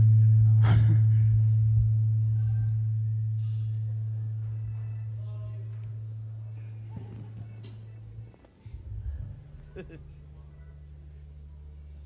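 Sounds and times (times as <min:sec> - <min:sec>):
low note through sound system: 0:00.0 - 0:12.0
faint laughter and voices: 0:00.6 - 0:01.5, 0:06.6 - 0:11.2.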